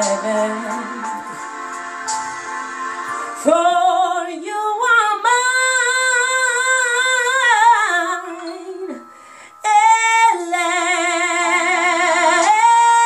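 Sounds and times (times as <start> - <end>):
woman singing unaccompanied: 0.0 - 1.1, 3.4 - 8.8, 9.6 - 13.0.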